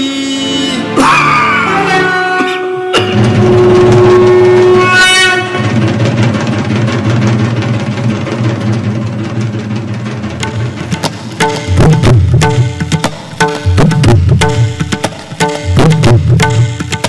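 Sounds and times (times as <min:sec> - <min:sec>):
long horn-like note: 0:00.3 - 0:05.8
fast drumming: 0:03.0 - 0:17.0.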